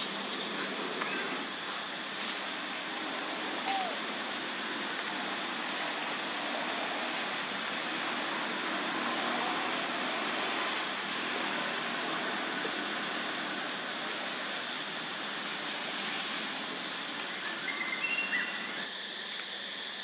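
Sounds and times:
outdoor background hiss: 0.0s - 20.0s.

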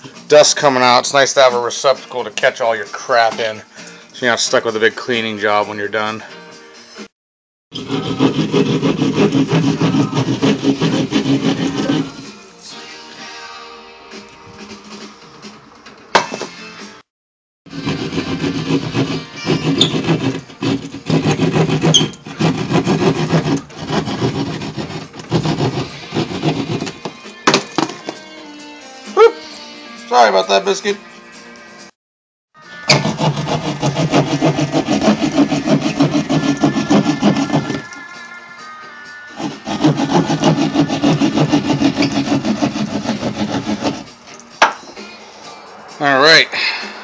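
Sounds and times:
hand saw cutting drywall: 7.7s - 12.3s, 17.7s - 27.2s, 32.9s - 38.0s, 39.4s - 44.1s
rock music: 27.1s - 31.8s.

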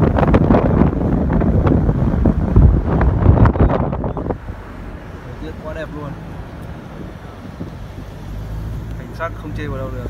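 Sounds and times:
wind buffeting microphone: 0.0s - 5.2s, 6.2s - 8.8s.

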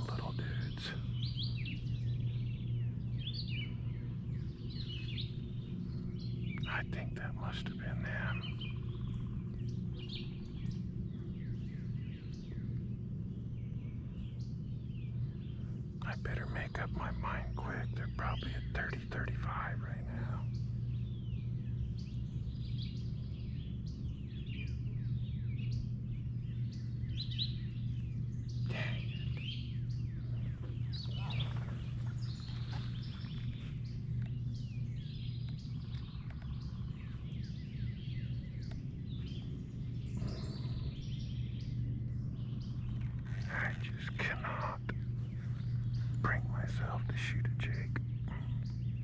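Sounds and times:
man whispering: 0.0s - 1.3s, 6.5s - 9.2s, 15.9s - 20.8s, 28.6s - 33.6s, 43.2s - 48.8s
songbirds chirping: 0.0s - 49.0s
steady low hum: 0.0s - 49.0s.

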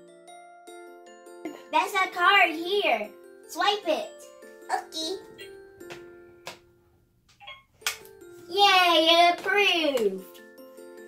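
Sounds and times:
faint background music: 1.2s - 11.0s.

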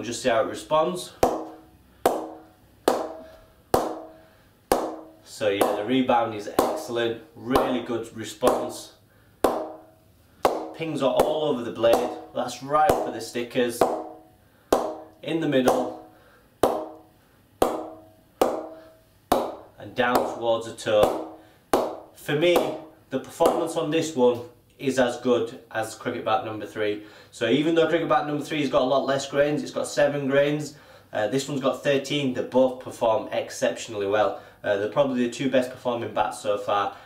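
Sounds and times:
ball knocking on cricket bat: 1.2s - 5.8s, 9.4s - 12.2s, 13.8s - 15.1s, 16.6s - 17.0s, 17.6s - 19.6s.

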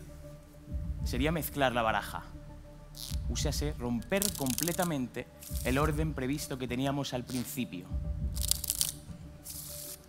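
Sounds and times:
playing cards being shuffled: 4.2s - 5.9s, 8.4s - 10.0s.

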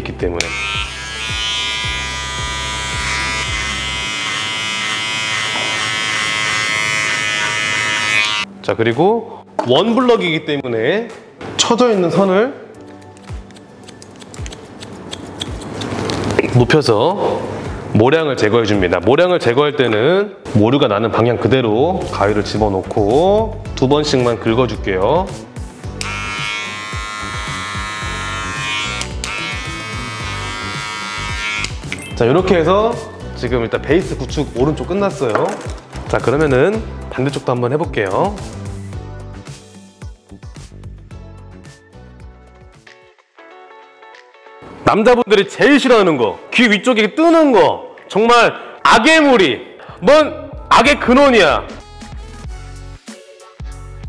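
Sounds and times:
electric hair clippers buzzing: 0.4s - 8.5s, 25.9s - 31.9s.

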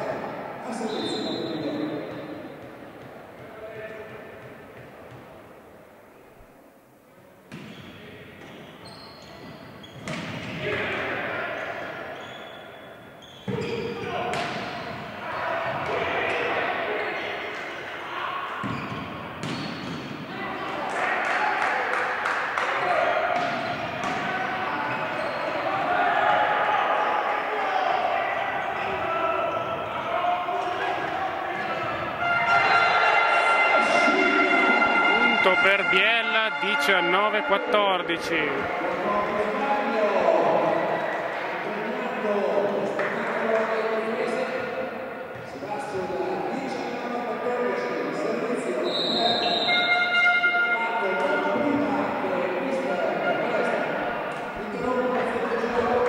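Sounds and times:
voices shouting in echoing hall: 0.0s - 4.5s, 8.0s - 56.0s
volleyball hits: 14.2s - 15.1s, 18.6s - 20.3s, 22.6s - 24.6s
volleyball bouncing on wooden floor: 19.4s - 20.0s.

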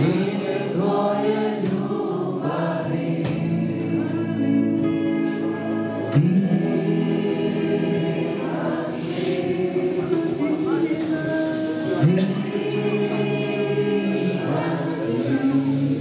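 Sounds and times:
electric guitar: 0.0s - 16.0s
women singing worship music: 0.0s - 16.0s
soft hissing swish: 8.4s - 13.4s.

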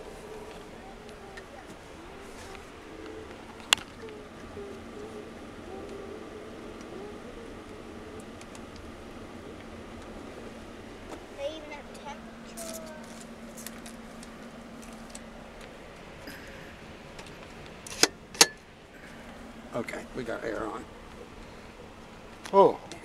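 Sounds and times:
faint steady hum: 0.0s - 23.0s
train running noise: 0.0s - 23.0s.

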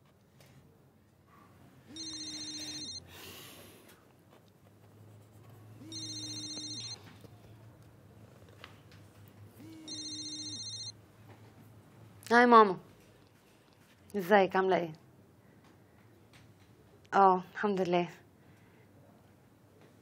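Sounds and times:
phone ringing electronically: 1.9s - 3.1s, 5.8s - 7.2s, 9.6s - 11.0s.

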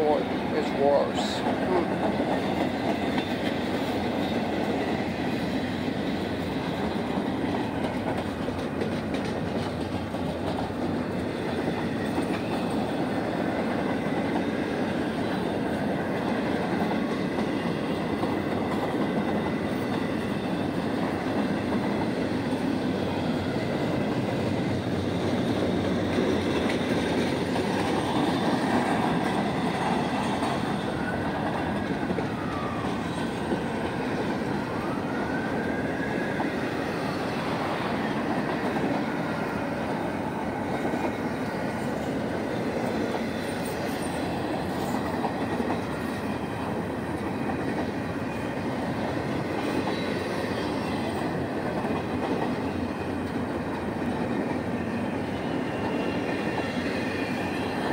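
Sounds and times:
freight train wheels rumbling: 0.0s - 57.9s.

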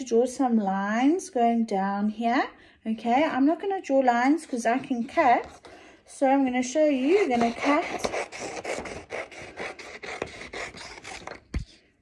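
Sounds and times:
scissors snipping paper: 7.0s - 11.8s.

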